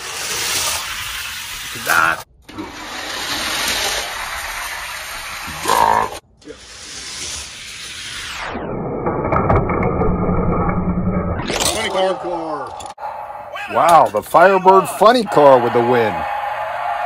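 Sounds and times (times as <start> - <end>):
toy cars rolling on plastic track: 0.0 - 8.4.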